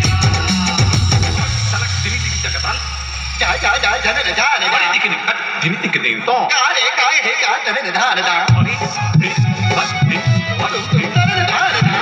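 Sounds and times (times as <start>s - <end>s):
voice over loudspeakers: 1.3s - 12.0s.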